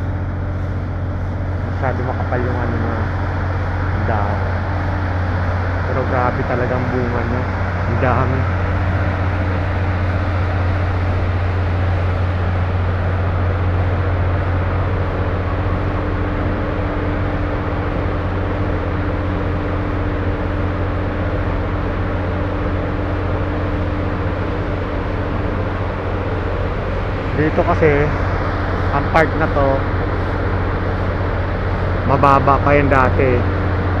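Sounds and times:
low mechanical drone: 0.0s - 34.0s.

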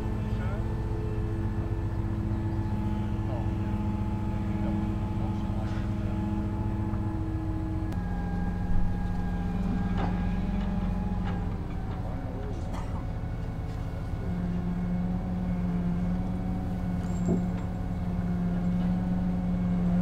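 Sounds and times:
large engine running: 0.0s - 20.0s.

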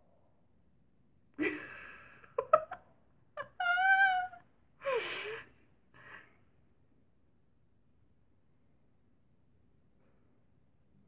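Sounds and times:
woman squealing with laughter: 3.4s - 5.3s.

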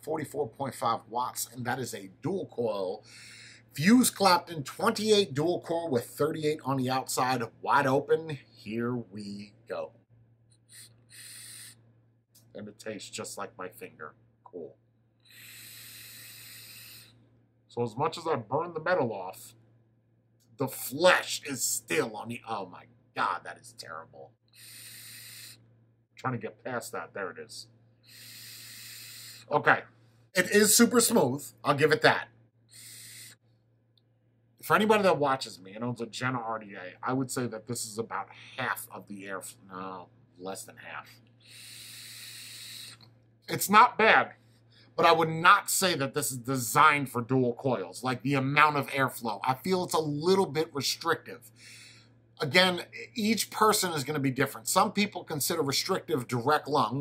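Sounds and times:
vape atomizer airy hiss: 10.6s - 11.8s, 15.2s - 17.2s, 24.5s - 25.7s, 28.0s - 29.5s, 32.7s - 33.4s, 41.4s - 43.1s.

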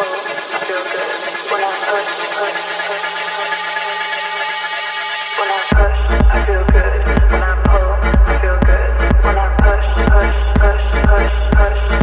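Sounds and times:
held synth chords: 0.0s - 12.0s.

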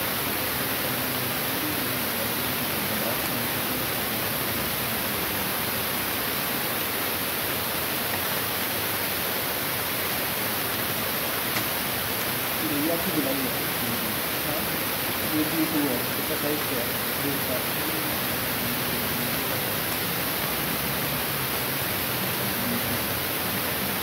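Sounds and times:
steady background hiss: 0.0s - 24.0s
faint voice: 0.2s - 5.5s, 12.6s - 20.4s, 22.2s - 24.0s.

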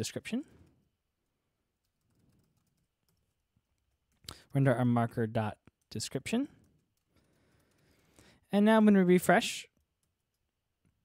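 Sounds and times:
faint keyboard typing: 0.1s - 11.0s.

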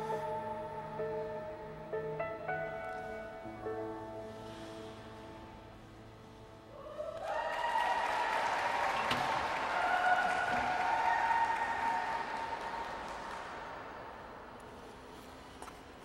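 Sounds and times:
audience applause: 7.2s - 14.4s.

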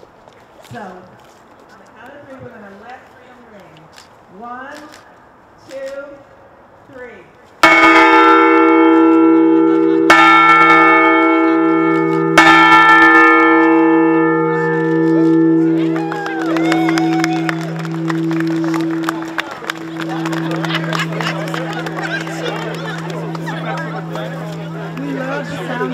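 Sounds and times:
large bell ringing: 7.6s - 25.9s
crowd chatter: 14.4s - 25.9s.

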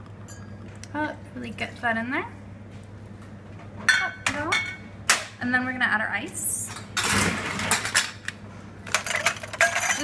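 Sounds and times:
glass ringing: 0.3s - 0.7s.

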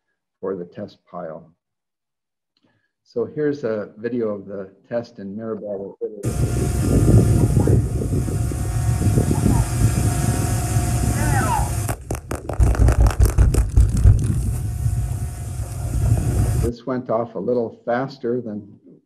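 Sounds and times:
muffled explosion thumps: 6.2s - 11.0s, 11.7s - 16.7s.

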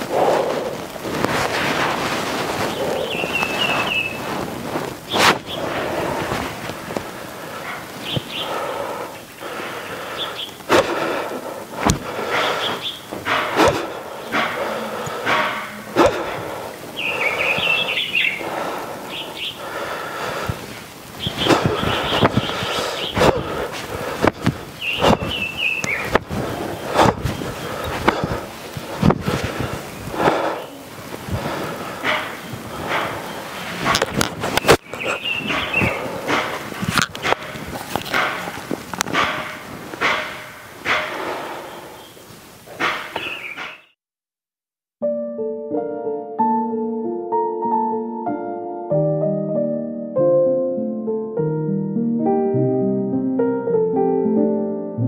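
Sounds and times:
rustling: 0.0s - 43.8s
small birds chirping: 1.7s - 44.0s
sharp knocks and taps: 24.2s - 26.4s.

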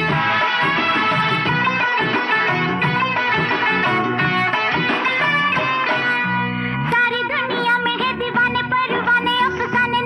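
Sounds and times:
instrumental film song music: 0.0s - 10.0s.

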